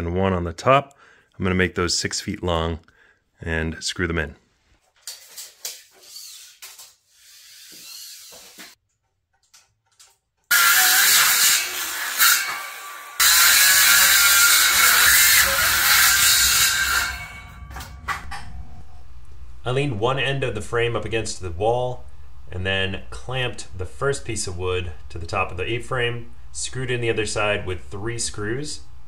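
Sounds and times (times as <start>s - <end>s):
circular saw cutting wood: 5.7s - 8.8s, 10.5s - 18.1s.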